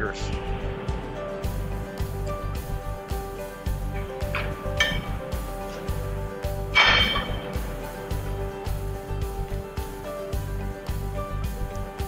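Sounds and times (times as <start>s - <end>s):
background music with steady beat: 0.0s - 12.0s
metal clinks and ringing clank: 4.2s - 5.9s, 6.6s - 7.9s.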